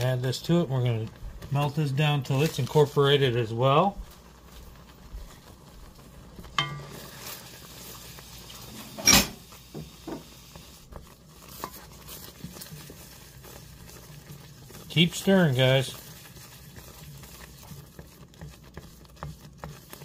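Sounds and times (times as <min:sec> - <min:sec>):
faint sauce bubbling: 0:00.0 - 0:20.0
spoon knocking and scraping pan: 0:06.3 - 0:20.0.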